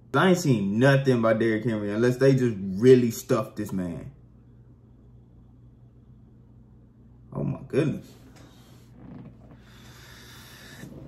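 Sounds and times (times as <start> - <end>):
man exhaling through nose: 9.6 - 11.0.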